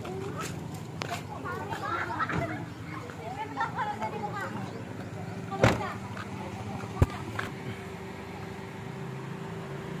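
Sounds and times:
car engine idling: 0:00.0 - 0:10.0
faint outdoor noise: 0:00.0 - 0:10.0.

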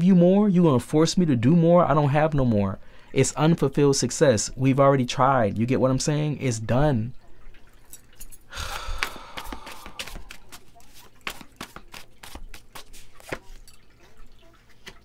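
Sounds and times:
cards clicking and tapping: 0:09.0 - 0:13.6
cards rustling: 0:09.0 - 0:13.7.

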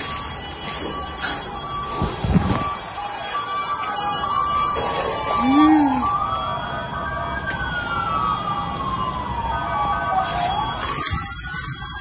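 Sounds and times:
electronic alarms sounding: 0:00.0 - 0:12.0.

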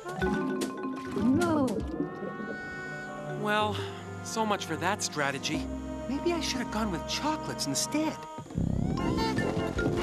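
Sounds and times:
swooping whale-like tone: 0:01.0 - 0:03.6.

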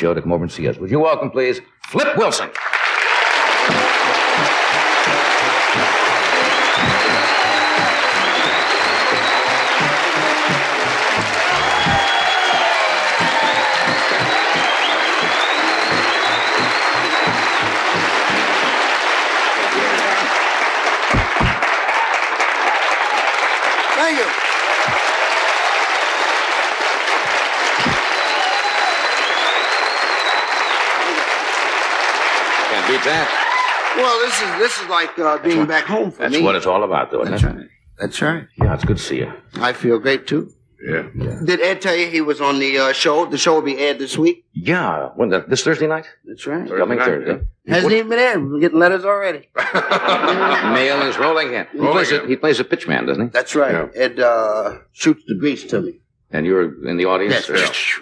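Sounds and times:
audience applauding: 0:02.5 - 0:35.8
band playing walk-on music: 0:03.5 - 0:20.4, 0:21.1 - 0:21.8, 0:27.0 - 0:30.4.

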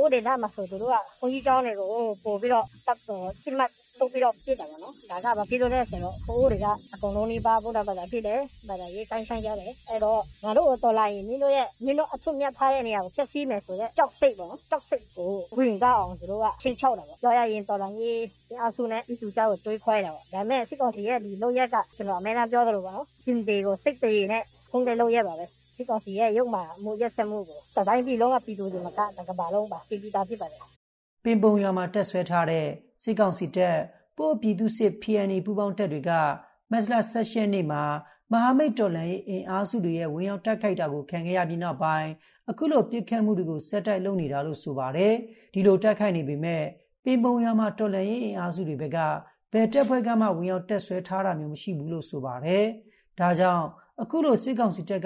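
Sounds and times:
person talking on radio news: 0:00.0 - 0:34.6, 0:44.8 - 0:55.0.

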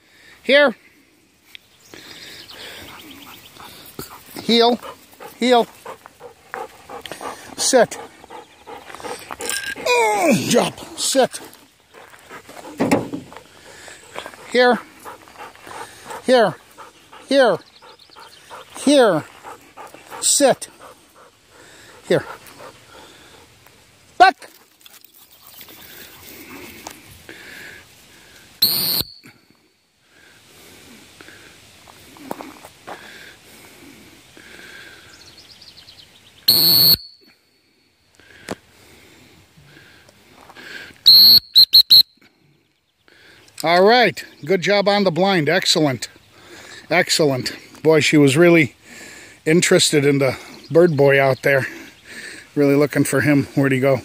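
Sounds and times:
dog breathing: 0:02.0 - 0:23.6
dog-training whistle blasts: 0:28.6 - 0:29.2, 0:36.5 - 0:37.2, 0:41.1 - 0:42.2.

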